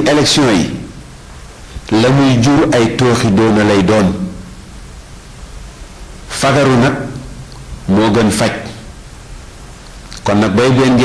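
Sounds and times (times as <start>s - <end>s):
man speaking: 0.0s - 0.9s, 1.9s - 4.4s, 6.3s - 8.9s, 10.2s - 11.0s
steady background hiss: 0.0s - 11.0s.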